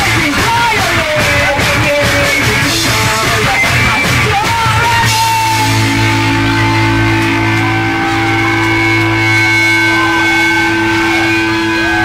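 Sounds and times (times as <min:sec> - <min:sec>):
distorted electric guitar feedback drone: 0:00.0 - 0:12.0.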